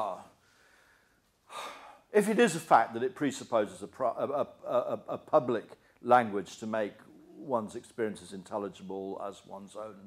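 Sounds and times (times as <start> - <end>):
man speaking: 0.0 - 0.4, 1.6 - 10.0
man breathing in: 0.4 - 2.1.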